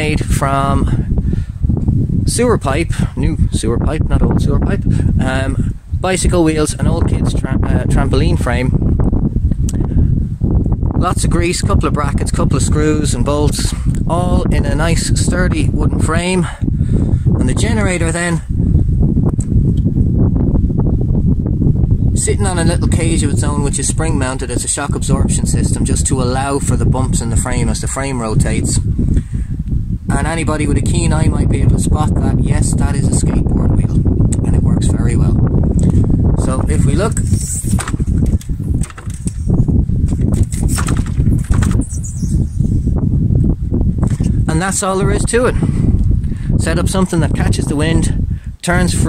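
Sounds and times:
wind buffeting microphone: 0:00.0 - 0:49.0
wind turbine rumbling and rattling: 0:00.0 - 0:49.0.

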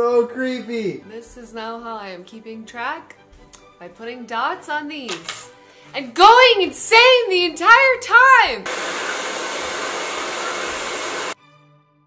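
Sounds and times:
hair dryer blowing: 0:08.6 - 0:11.4.

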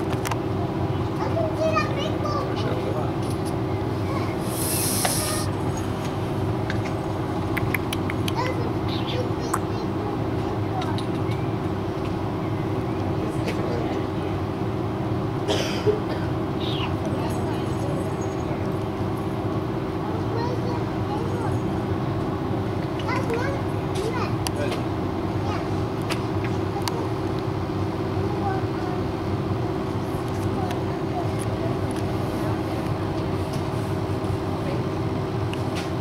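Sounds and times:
children's voices: 0:00.0 - 0:05.5, 0:07.6 - 0:14.4, 0:15.5 - 0:19.1, 0:19.9 - 0:33.8
background chatter of people: 0:00.0 - 0:36.0
low background hum: 0:00.0 - 0:36.0
short hiss: 0:04.4 - 0:05.5.

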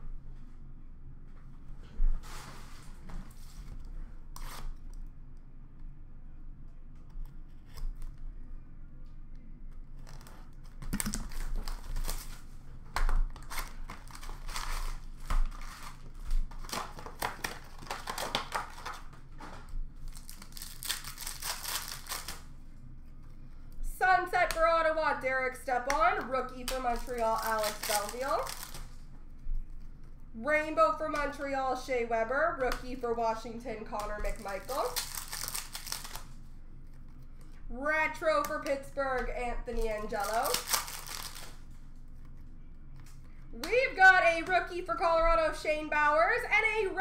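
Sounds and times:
plastic wrapping tearing: 0:10.0 - 0:22.5, 0:26.1 - 0:29.0, 0:34.0 - 0:37.2, 0:39.8 - 0:42.4.

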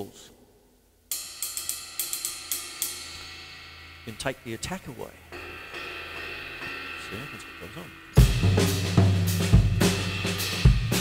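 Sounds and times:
cymbals ringing: 0:01.1 - 0:11.0
drums played with mallets: 0:01.1 - 0:11.0.

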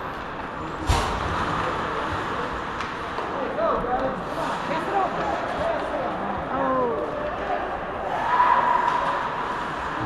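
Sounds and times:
ice hockey play noise: 0:00.0 - 0:10.0.

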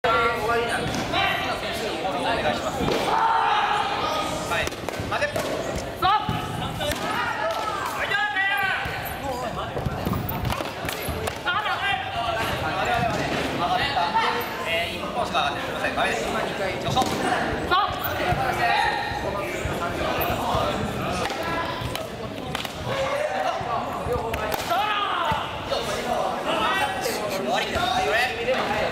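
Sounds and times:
many voices talking and calling: 0:00.0 - 0:28.9
people shouting: 0:03.0 - 0:04.3, 0:06.0 - 0:09.0, 0:24.5 - 0:25.7.

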